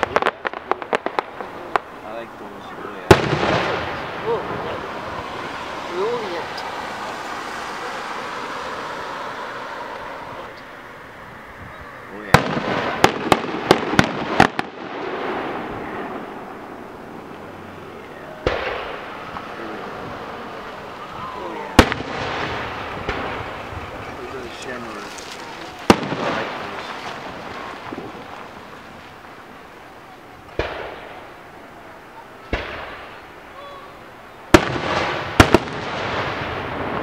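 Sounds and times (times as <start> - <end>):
crowd voices: 0.0 - 37.0.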